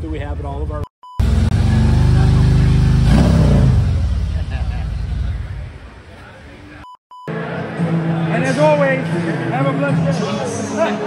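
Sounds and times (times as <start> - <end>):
test-tone beep: 1.0 - 1.3
motorcycle engine revving: 1.2 - 5.8.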